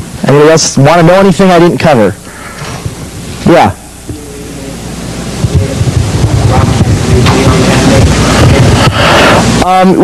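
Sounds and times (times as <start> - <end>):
steady hiss: 0.0 - 10.0
low rumble: 4.0 - 9.6.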